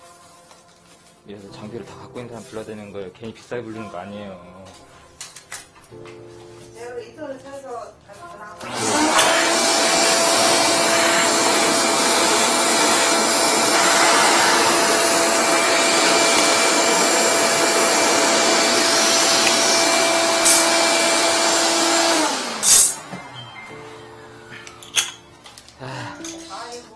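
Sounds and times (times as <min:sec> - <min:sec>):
wet dry vacuum sucking at drain: 0:08.6 - 0:23.0
vacuum motor winding down: 0:08.6 - 0:23.2.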